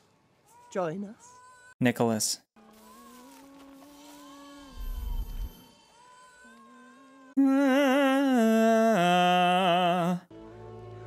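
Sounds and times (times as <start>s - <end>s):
low humming note: 4.5s - 5.7s
deep rumble: 4.7s - 5.5s.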